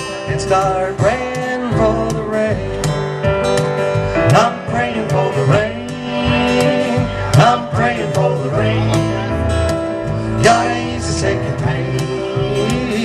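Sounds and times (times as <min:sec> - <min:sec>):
live bluegrass band playing: 0:00.0 - 0:13.0.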